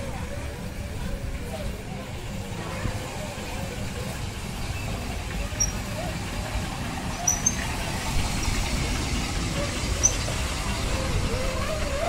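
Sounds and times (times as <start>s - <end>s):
ride train rumbling on track: 0.0s - 12.0s.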